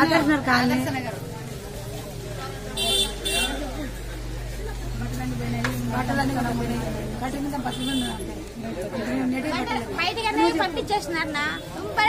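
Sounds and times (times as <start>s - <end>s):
faint voices: 0.0s - 12.0s
vehicle horn toots: 7.7s - 8.3s.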